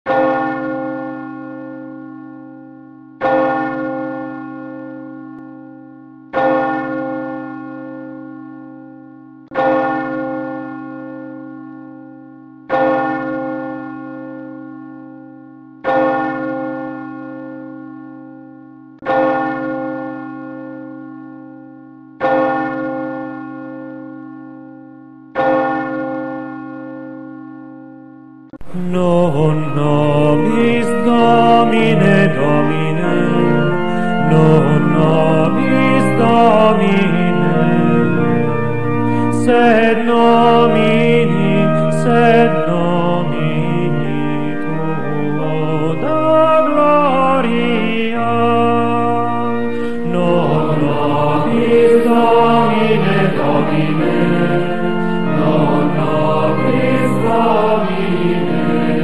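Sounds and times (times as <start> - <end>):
church bell tolling: 0.1 - 59.0.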